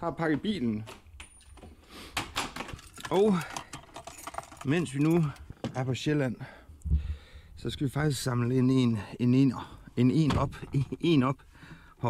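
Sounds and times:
metallic clicks and rattles: 2.2s - 5.5s.

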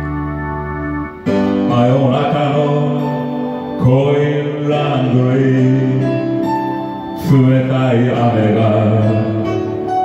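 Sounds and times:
karaoke blues backing music: 0.0s - 10.0s
man singing into a microphone: 1.6s - 10.0s.

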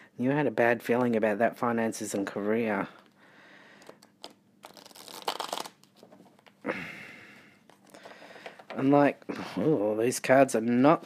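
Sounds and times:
cards being shuffled: 3.8s - 6.6s.

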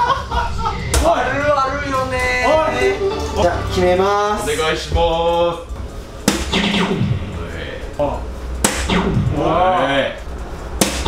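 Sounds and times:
background music holding note: 2.4s - 4.8s
dart striking electronic dartboard: 6.2s - 7.4s, 8.6s - 9.4s, 10.8s - 11.0s.

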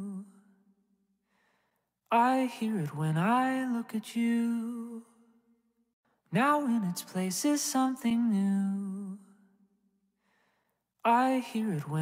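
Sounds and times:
person singing: 6.3s - 9.2s.

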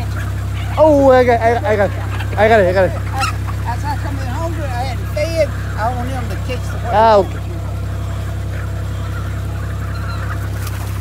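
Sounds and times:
chickens calling: 0.0s - 11.0s
steady low hum: 0.0s - 11.0s.

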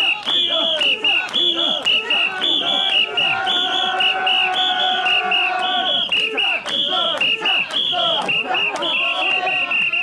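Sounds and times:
crowd shouting and chanting: 0.0s - 10.0s
whistle short blasts: 0.0s - 10.0s.

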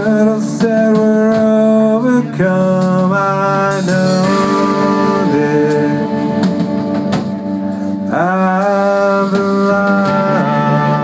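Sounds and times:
amplified electric guitar chords: 0.0s - 11.0s
drum or cymbal hits: 0.0s - 11.0s.

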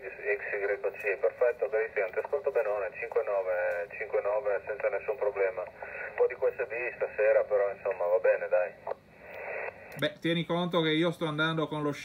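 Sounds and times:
man speaking over radio: 0.0s - 8.9s.

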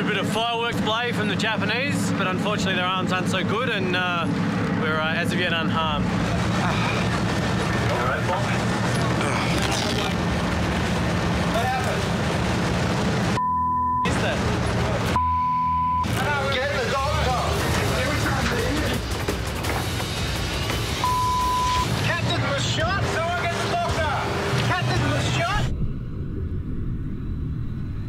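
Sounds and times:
agitated voices: 5.9s - 10.5s
censor bleeps: 13.4s - 14.1s, 15.2s - 16.1s, 21.0s - 21.9s
low rumble: 25.5s - 28.0s.

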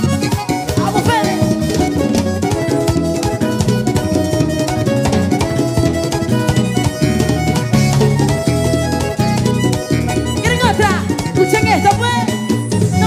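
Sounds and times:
salsa band playing: 0.0s - 13.0s.

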